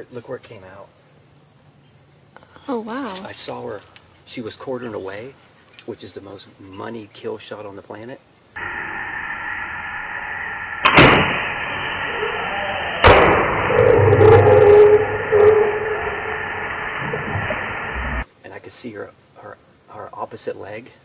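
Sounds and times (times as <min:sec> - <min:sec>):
sharp crack: 0:09.9 - 0:14.3.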